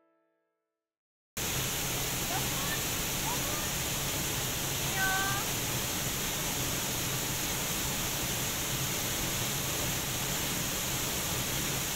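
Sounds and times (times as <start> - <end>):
waterfall rushing: 1.4 - 11.9.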